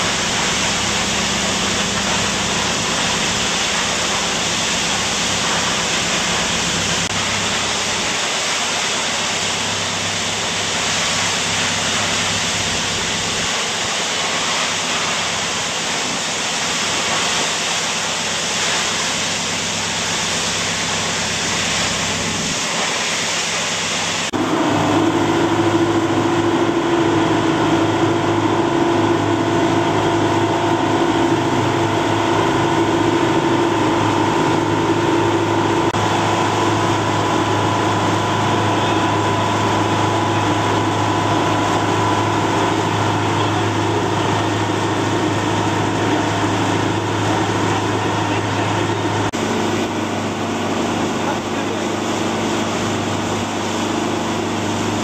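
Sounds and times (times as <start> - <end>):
boat engine humming: 0.0 - 55.0
water washing: 0.0 - 55.0
waterfall rushing: 0.0 - 55.0.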